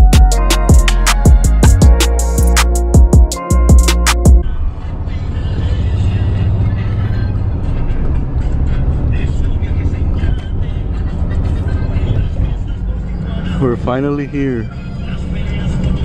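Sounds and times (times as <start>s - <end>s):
engine drone in vehicle cabin: 4.4s - 16.0s.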